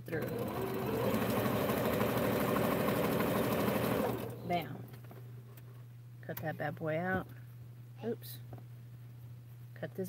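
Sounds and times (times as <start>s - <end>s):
sewing machine running: 0.0s - 4.4s.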